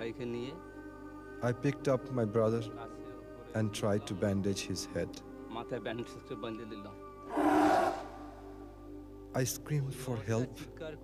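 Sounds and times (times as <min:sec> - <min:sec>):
background music sustained tones: 0:00.0 - 0:11.0.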